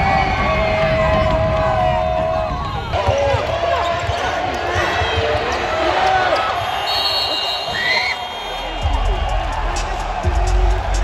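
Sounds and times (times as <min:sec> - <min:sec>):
crowd shouting: 0:00.0 - 0:11.0
referee's whistle: 0:06.6 - 0:09.0.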